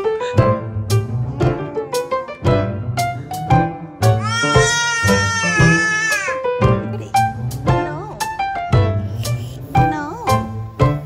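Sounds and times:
piano music: 0:00.0 - 0:11.0
baby squealing: 0:04.2 - 0:06.4.

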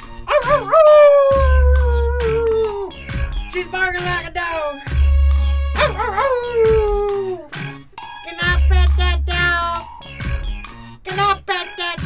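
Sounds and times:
song backing beat: 0:00.0 - 0:12.0
dog-like howl in song: 0:00.3 - 0:03.1, 0:05.8 - 0:07.6.

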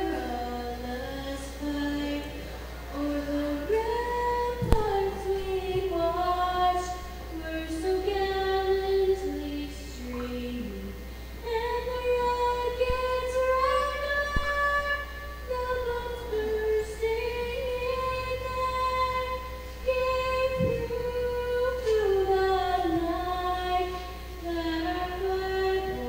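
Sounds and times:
girl singing solo: 0:03.0 - 0:26.0.

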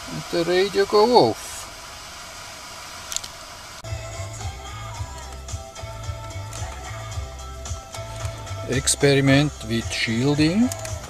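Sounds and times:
radio static hiss: 0:00.0 - 0:11.0
music with bass beat: 0:03.8 - 0:11.0.

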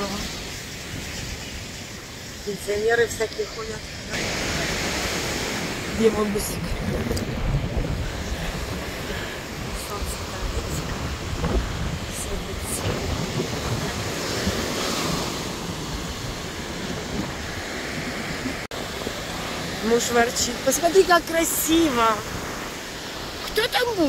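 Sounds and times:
ocean surf breaking: 0:00.0 - 0:24.0
wind buffeting microphone: 0:00.0 - 0:24.0.

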